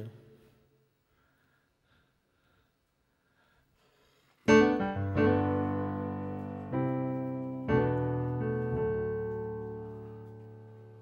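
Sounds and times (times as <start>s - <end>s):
electronic keyboard piano chords: 4.5s - 11.0s.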